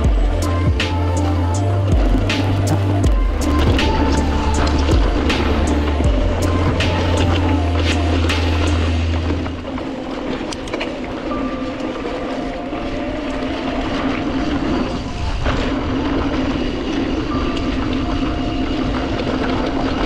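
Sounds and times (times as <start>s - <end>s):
bike clicks and rattles: 0.0s - 12.4s
bike tyres rolling on dirt: 0.0s - 20.0s
wind rumble on microphone: 0.0s - 20.0s.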